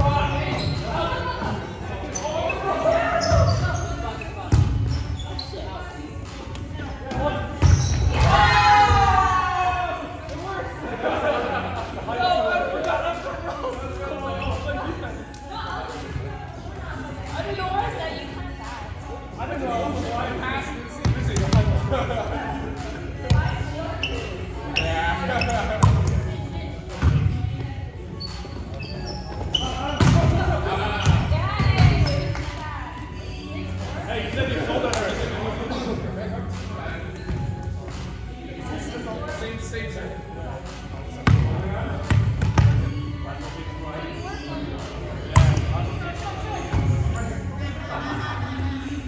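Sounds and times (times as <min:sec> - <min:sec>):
volleyball smacks echoing in gym: 0:45.3 - 0:45.8.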